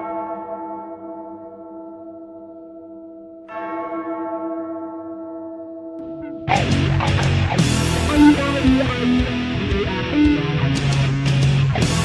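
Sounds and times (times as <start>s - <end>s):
large church bell tolling: 0.0s - 10.7s.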